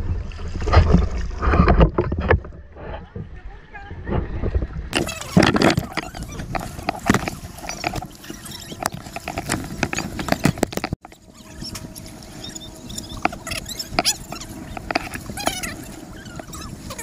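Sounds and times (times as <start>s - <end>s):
sea water lapping and splashing: 0.0s - 17.0s.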